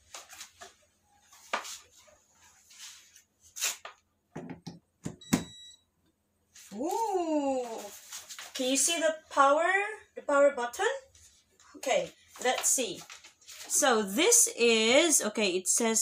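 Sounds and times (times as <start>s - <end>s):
short electronic beep: 5.2s - 5.8s.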